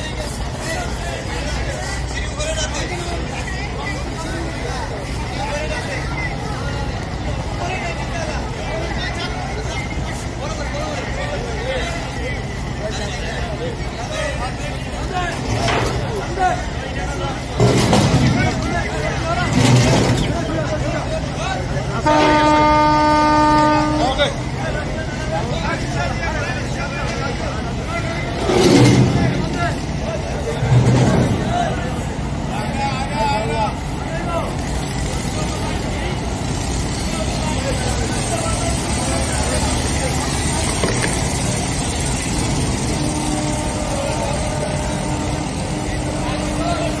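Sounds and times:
boat engine rumble: 0.0s - 47.0s
murmur of voices: 0.0s - 47.0s
boat horn blowing: 22.0s - 24.4s, 42.9s - 47.0s
churned water: 33.8s - 47.0s.

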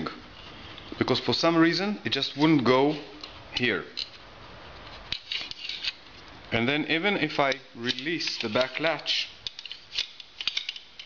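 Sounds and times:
metallic scraping clicks: 5.1s - 6.4s, 7.3s - 11.0s.

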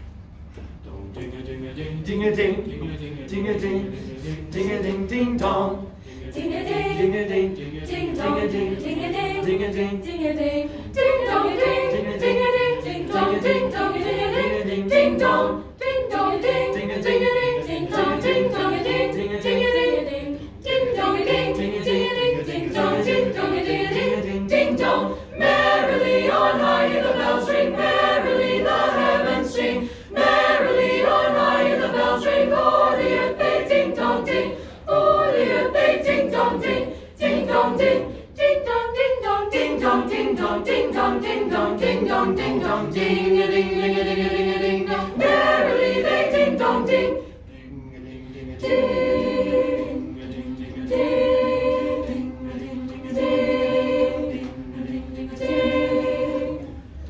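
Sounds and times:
group singing a cappella: 0.9s - 57.0s.

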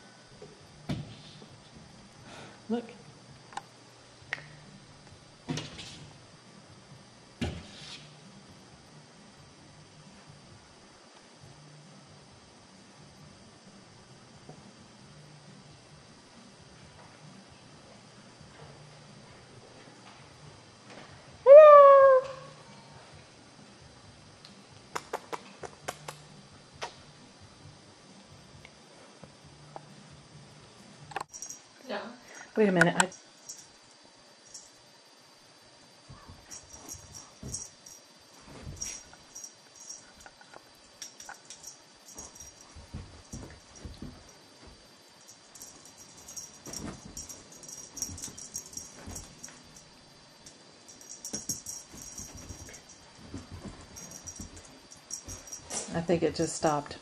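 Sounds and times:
light metallic jingling: 36.2s - 56.9s.

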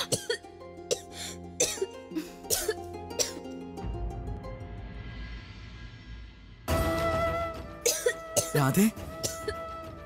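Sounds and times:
woman coughing: 0.0s - 3.4s, 7.9s - 8.5s
background music: 0.0s - 10.0s.

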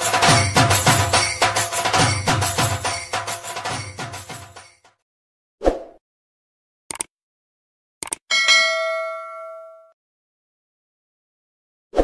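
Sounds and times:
quick clicks: 6.9s - 7.1s, 8.0s - 8.2s
bright bell ding: 8.3s - 10.0s.

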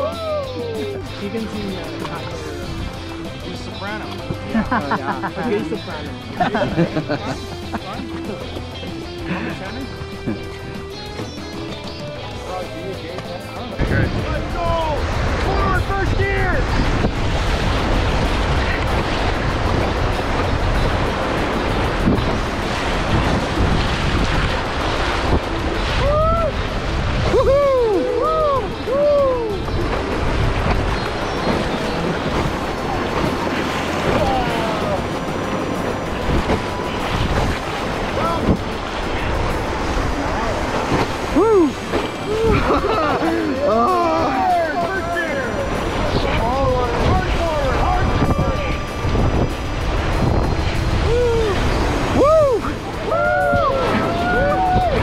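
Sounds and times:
people whooping and yelling: 0.0s - 1.1s, 25.9s - 29.9s, 34.0s - 35.0s, 41.2s - 50.0s, 50.8s - 55.0s
whitewater rapids rushing: 0.0s - 55.0s
wind on microphone: 13.8s - 43.5s, 44.3s - 55.0s.

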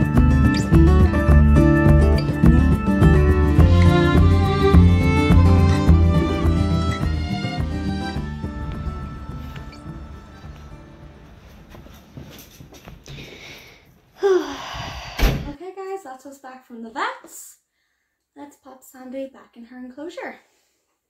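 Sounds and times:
background music: 0.0s - 11.7s
door shutting thud: 15.2s - 15.6s.

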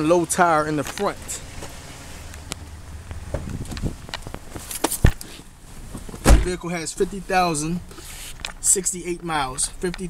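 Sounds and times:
footsteps: 0.8s - 6.2s.

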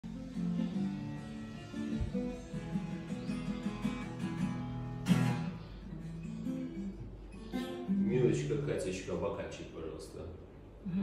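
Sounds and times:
acoustic guitar chords: 0.0s - 9.3s.

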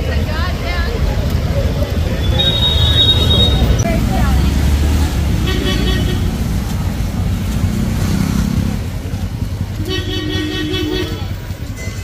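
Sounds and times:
motor scooters and cars passing: 0.0s - 12.0s
horns honking: 2.1s - 3.9s, 5.3s - 6.6s, 9.8s - 12.0s.

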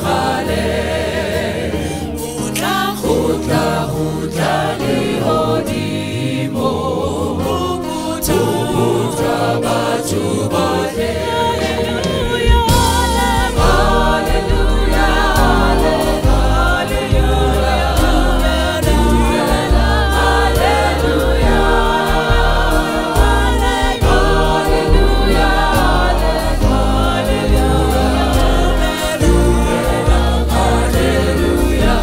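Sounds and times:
choir singing in harmony: 0.0s - 32.0s
keyboards: 0.0s - 32.0s
bass: 11.3s - 32.0s
drum kit: 11.9s - 32.0s.

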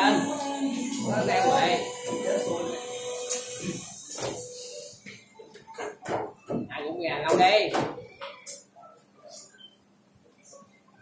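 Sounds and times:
background music with singing: 0.0s - 6.6s.

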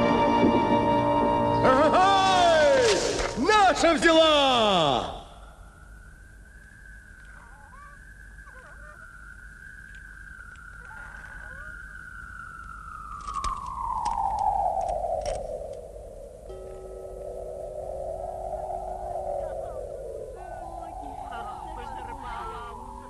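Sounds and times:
eerie wavering tone: 5.2s - 23.0s
faint clicks: 6.6s - 7.4s, 9.8s - 11.5s
steady low tones: 13.8s - 23.0s.

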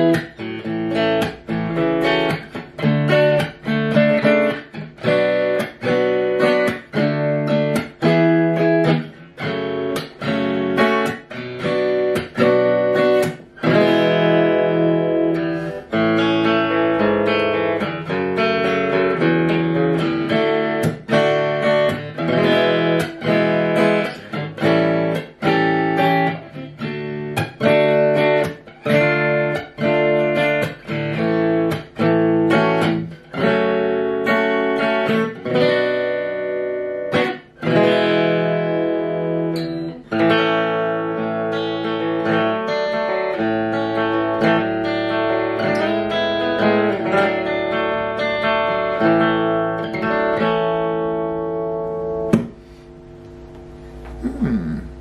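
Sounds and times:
amplified acoustic guitar playing: 0.0s - 55.0s.

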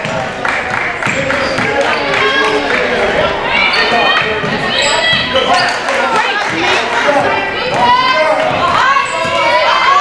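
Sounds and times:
sneakers squeaking: 1.0s - 10.0s
people calling out: 1.2s - 10.0s.

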